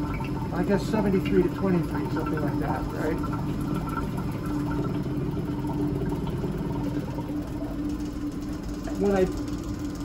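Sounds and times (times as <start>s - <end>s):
vacuum pump humming: 0.0s - 10.0s.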